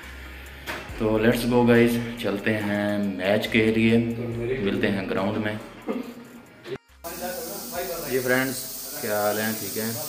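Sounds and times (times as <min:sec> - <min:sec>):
steady hiss: 0:07.1 - 0:10.0.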